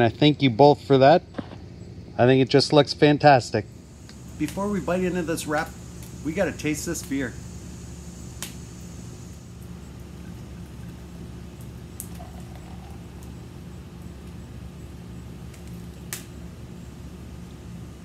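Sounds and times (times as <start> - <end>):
steady low hum: 0.0 - 18.0
beer pouring into glass: 12.0 - 13.5.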